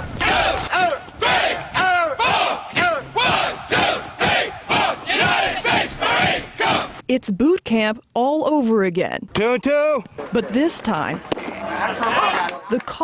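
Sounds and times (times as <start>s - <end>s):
group shouting in unison: 0.1s - 7.0s.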